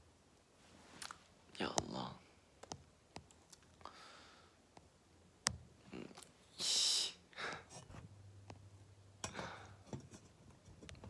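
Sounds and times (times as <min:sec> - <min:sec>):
light clicks and taps: 0:02.6 - 0:03.9.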